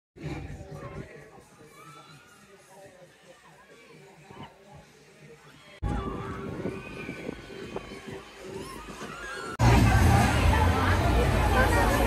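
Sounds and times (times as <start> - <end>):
voices: 0.2 - 12.0
loud low rumble: 9.6 - 12.0.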